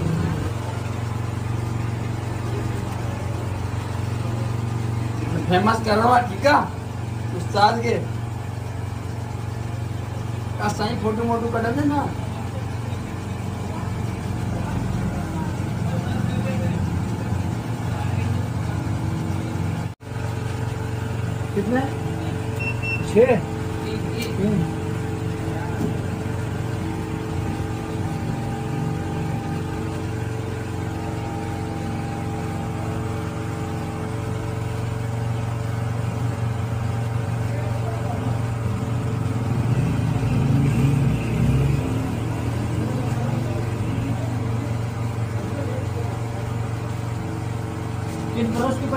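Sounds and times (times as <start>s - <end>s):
low engine-like hum: 0.0s - 48.9s.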